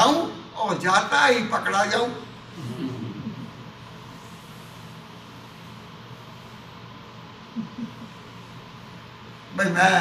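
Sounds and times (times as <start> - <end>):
room hiss: 0.0 - 10.0.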